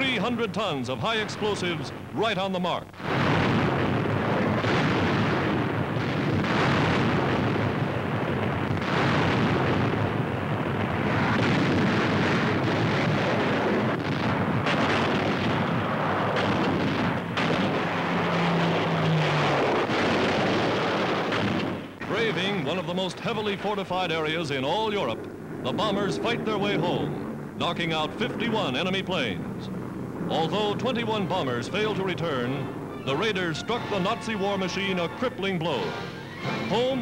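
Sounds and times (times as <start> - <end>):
aircraft engines: 0.0 - 3.0, 3.6 - 37.0
bomb explosions: 0.0 - 37.0.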